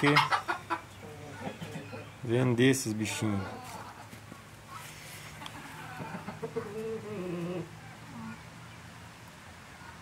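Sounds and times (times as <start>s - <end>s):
chickens clucking: 0.0s - 8.5s.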